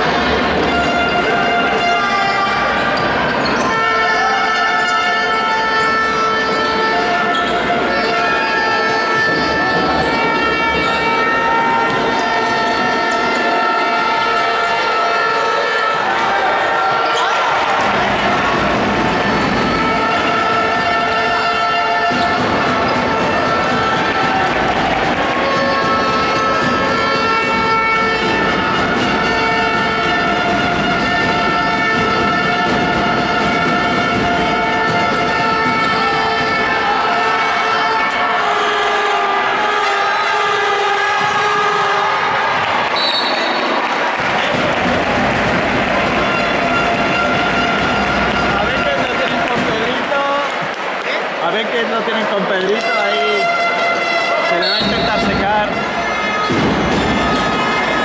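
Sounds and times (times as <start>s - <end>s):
sustained horn-like tones: 0.0s - 50.3s, 52.1s - 58.0s
crowd noise in a large hall: 0.0s - 58.0s.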